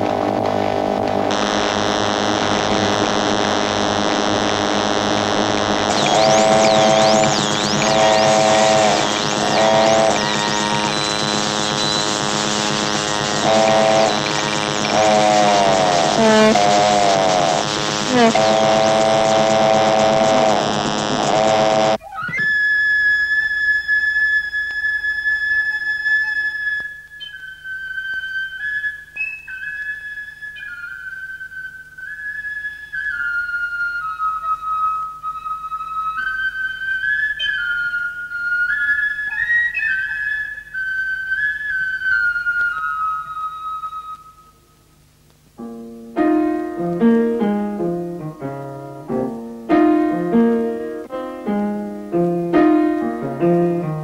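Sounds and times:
solo flute melody: 0:05.9 - 0:16.6, 0:21.3 - 0:44.9.

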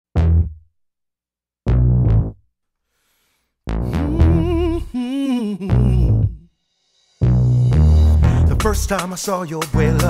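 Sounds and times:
singer holding wordless note: 0:03.8 - 0:06.4
pop chord and drum-machine stabs: 0:07.5 - 0:10.0.

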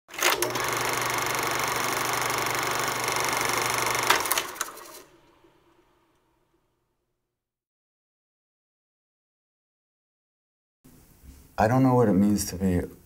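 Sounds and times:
film projector whirring: 0:00.1 - 0:06.2
sharp projector clicks: 0:00.2 - 0:05.4.

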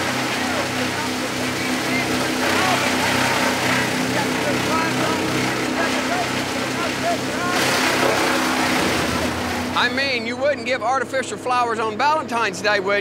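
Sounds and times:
tree being shredded: 0:00.0 - 0:10.0
wood chipper engine drone: 0:00.0 - 0:13.0.

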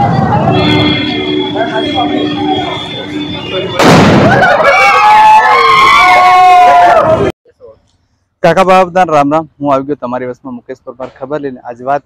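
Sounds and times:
firecracker bang: 0:03.7 - 0:04.6.

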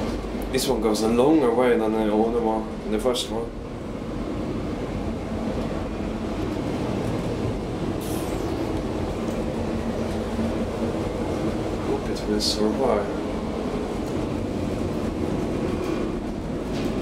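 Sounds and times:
elevator rolling rumble: 0:00.0 - 0:17.0
brief hiss: 0:08.0 - 0:08.5.

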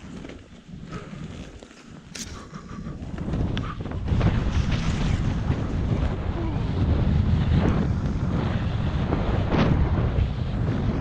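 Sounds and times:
wind rushing over microphone: 0:00.6 - 0:11.0.

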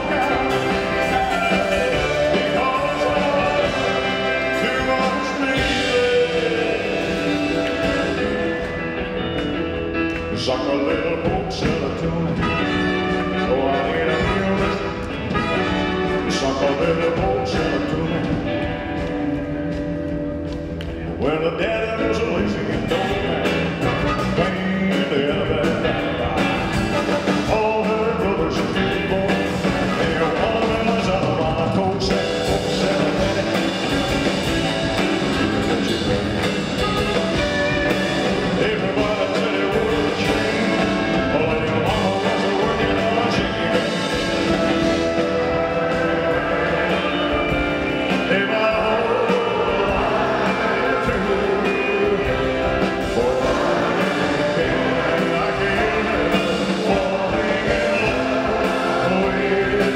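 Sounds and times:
man singing: 0:00.0 - 0:09.0, 0:09.9 - 0:19.2, 0:21.1 - 0:59.9
rock and roll band: 0:00.0 - 0:59.9.

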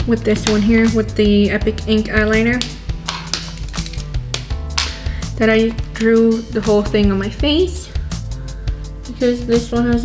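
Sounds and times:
woman talking: 0:00.0 - 0:02.6, 0:05.4 - 0:08.0, 0:09.1 - 0:10.0
background music with bass line: 0:00.0 - 0:10.0
sharp percussive hits: 0:02.6 - 0:05.1.

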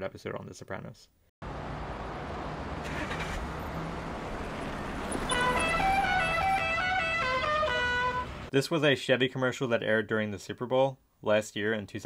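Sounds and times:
cars passing on a street: 0:01.4 - 0:08.5.

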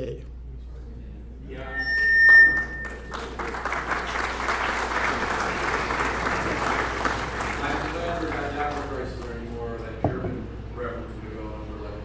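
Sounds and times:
high whistle: 0:01.6 - 0:03.4
audience applauding: 0:02.4 - 0:09.5.

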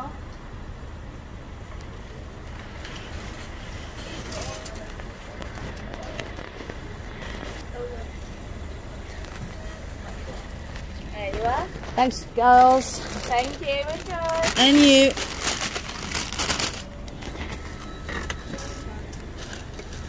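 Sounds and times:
faint distant voices: 0:01.9 - 0:20.0.

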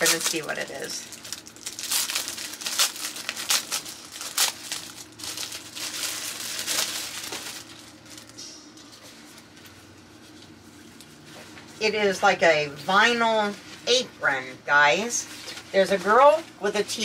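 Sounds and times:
plastic bag crinkling: 0:00.0 - 0:08.4.

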